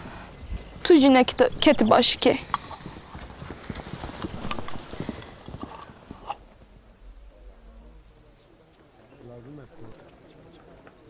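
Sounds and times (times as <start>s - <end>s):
light knocking footsteps: 2.4s - 6.8s.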